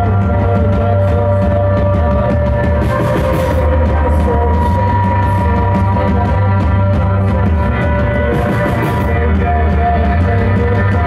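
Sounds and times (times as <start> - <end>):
drums: 0.0 - 11.0
rock band playing live: 0.0 - 11.0
sustained electric guitar: 0.0 - 11.0.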